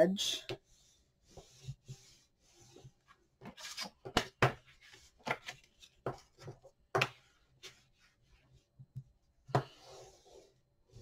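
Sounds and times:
bone folder scraping paper: 0:00.6 - 0:06.5.

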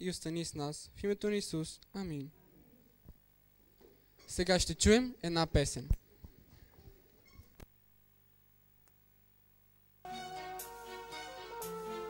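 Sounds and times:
faint shuffling: 0:05.8 - 0:07.6
brief high squeak: 0:07.2 - 0:07.6.

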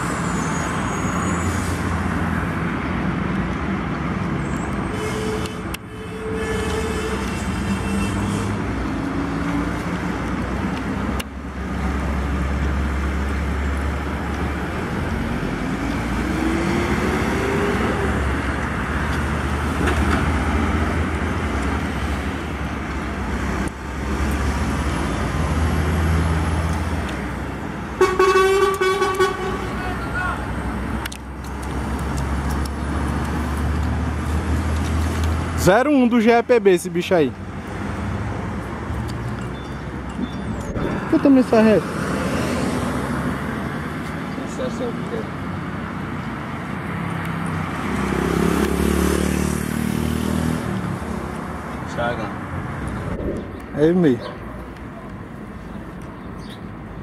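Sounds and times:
trucks passing on highway: 0:00.0 - 0:57.0
truck horn blast: 0:04.9 - 0:08.6, 0:28.0 - 0:29.9.

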